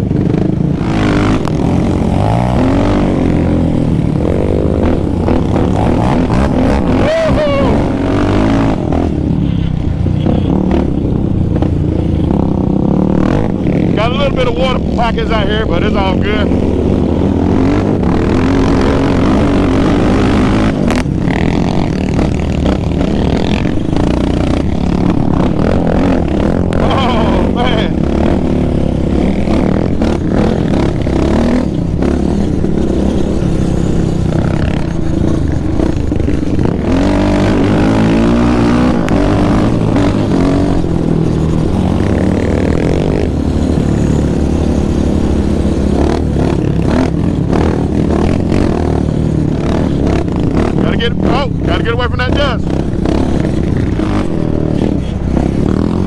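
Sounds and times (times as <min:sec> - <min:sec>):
quad engine revving: 0:00.0 - 0:56.0.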